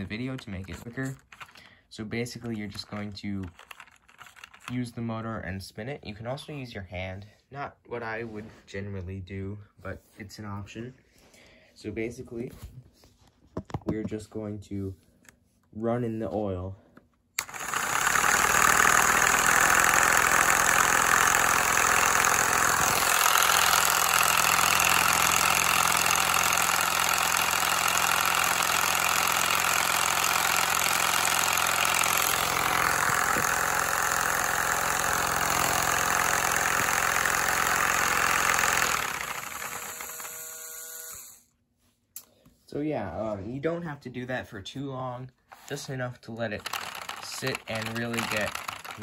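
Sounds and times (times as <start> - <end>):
toy electric motor running: 3.5 - 4.7, 17.4 - 41.5, 46.6 - 49.0.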